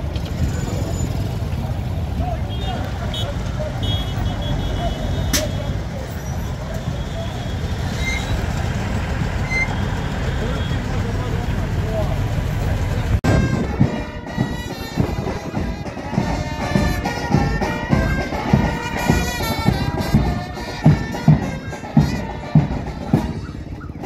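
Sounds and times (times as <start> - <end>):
crowd voices: 0.0 - 24.0
vehicle engines rumbling: 0.0 - 24.0.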